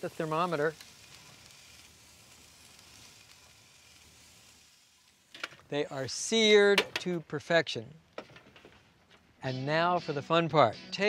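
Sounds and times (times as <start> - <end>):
steaks sizzling on a grill: 0.0 - 6.8.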